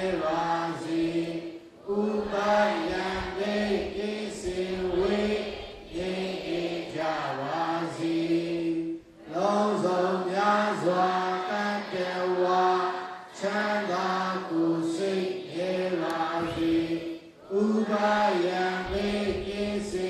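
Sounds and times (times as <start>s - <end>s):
man chanting into a microphone: 0.0s - 20.0s.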